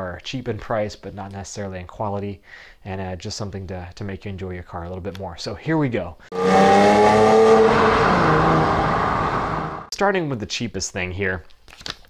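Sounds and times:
car engine at high revs: 6.3s - 9.9s
rush of exhaust noise: 6.3s - 9.9s.

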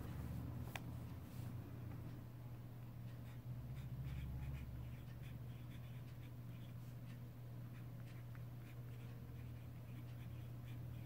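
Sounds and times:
steady low hum: 0.0s - 11.0s
pen scratching on paper: 3.2s - 6.8s, 7.7s - 11.0s.

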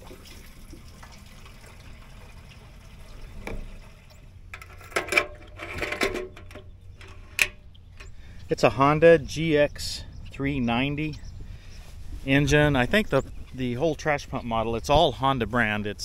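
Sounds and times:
gasoline pouring into fuel tank: 0.0s - 7.5s
gas can knocks and clatters: 4.5s - 8.1s.

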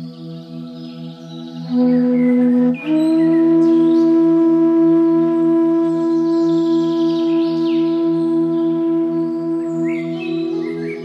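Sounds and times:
low pulsing drone: 0.0s - 11.0s
held flute note: 1.7s - 11.0s.

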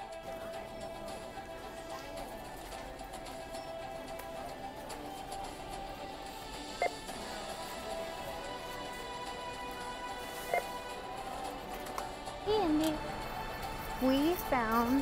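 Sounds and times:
background music: 0.0s - 15.0s
barcode scanner beeping: 10.5s - 10.8s.

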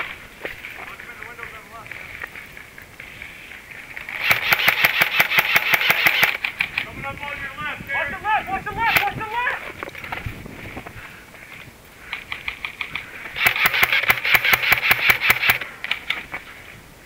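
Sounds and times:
airsoft gun rapid shots: 4.2s - 6.7s, 8.9s - 9.2s, 12.4s - 15.7s
distant shouting: 6.8s - 9.8s
person shouting: 7.9s - 9.7s.

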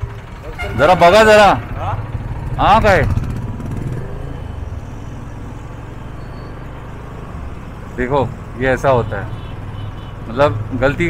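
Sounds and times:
motorcycle engine low rumble: 0.0s - 6.0s.

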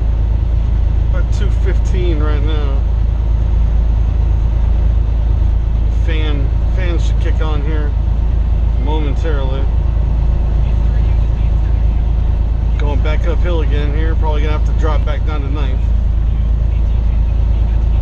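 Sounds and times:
truck diesel engine rumble: 0.0s - 18.0s.

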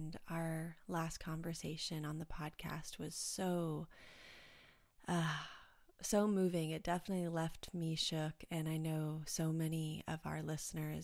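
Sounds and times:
woman breathing softly: 3.9s - 6.0s.

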